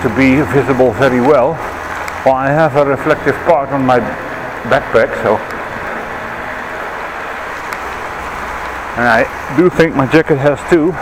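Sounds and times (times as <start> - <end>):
tyres on wet path: 0.0 - 11.0.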